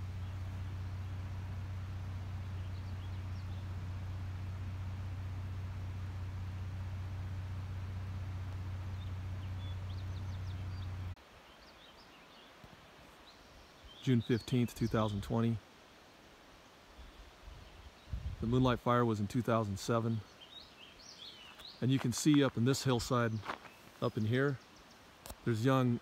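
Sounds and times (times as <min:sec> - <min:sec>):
steady low hum: 0:00.0 - 0:11.2
bird chirps: 0:02.3 - 0:03.9, 0:08.7 - 0:12.6, 0:20.2 - 0:22.1.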